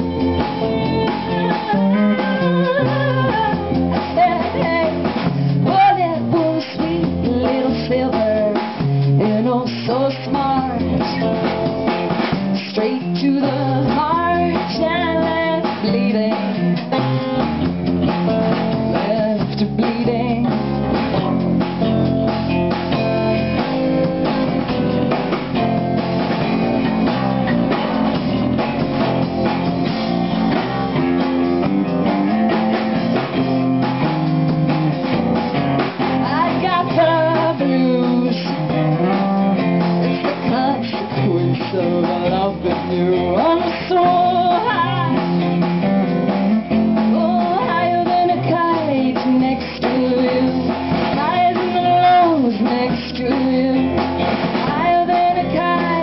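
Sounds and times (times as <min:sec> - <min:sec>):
bass guitar: 0:00.0 - 0:56.0
drum kit: 0:00.0 - 0:56.0
guitar: 0:00.0 - 0:56.0.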